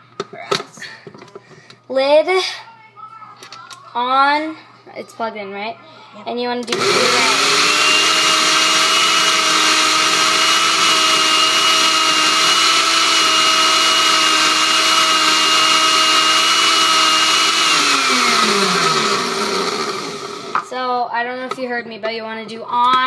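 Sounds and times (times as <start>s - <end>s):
blender motor running: 6.6s - 20.7s.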